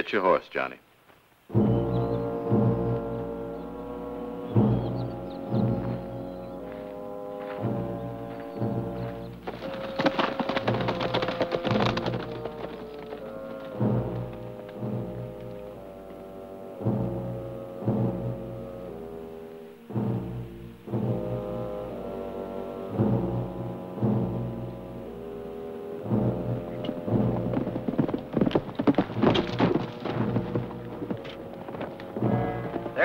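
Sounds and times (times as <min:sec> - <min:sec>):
orchestral western film score: 0:01.4 - 0:33.0
horses' hooves clattering: 0:04.4 - 0:18.7, 0:26.0 - 0:33.0.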